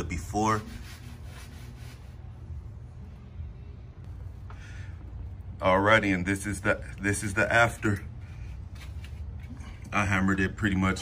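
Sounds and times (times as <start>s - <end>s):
faint low rumble: 2.2s - 10.0s.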